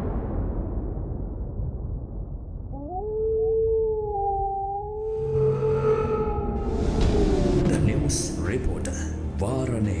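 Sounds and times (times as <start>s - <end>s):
low rumble: 0.0s - 9.4s
howl-like animal cry: 2.7s - 7.6s.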